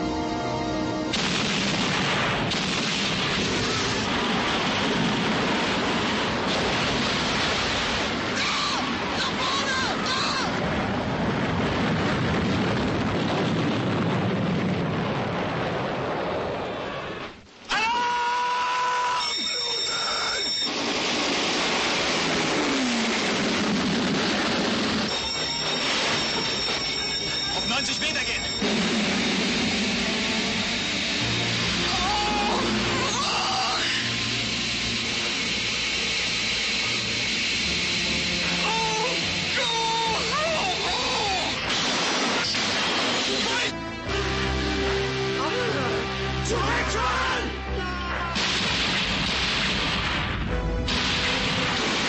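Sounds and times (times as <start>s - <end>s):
high-pitched squeal: 18.8s - 21.0s, 25.1s - 41.7s
rush of water and spray: 20.7s - 28.4s, 29.0s - 43.8s
man talking: 27.6s - 28.5s.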